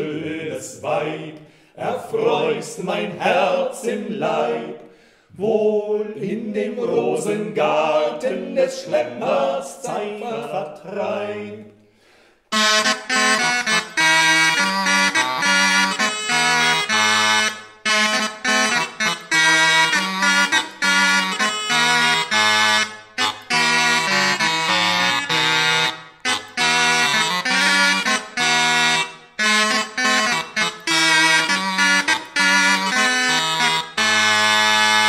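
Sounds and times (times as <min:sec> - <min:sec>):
cornamuses playing in harmony: 0:00.0 - 0:35.0.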